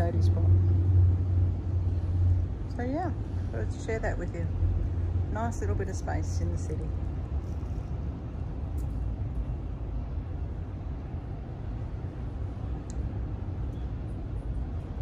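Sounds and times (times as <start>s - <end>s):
city traffic rumble: 0.0s - 15.0s.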